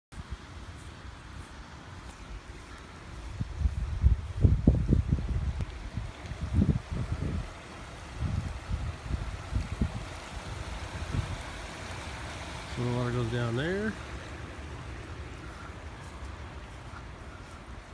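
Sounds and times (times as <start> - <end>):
floodwater rushing along street: 0.2 - 17.9
wind buffeting microphone: 2.0 - 17.9.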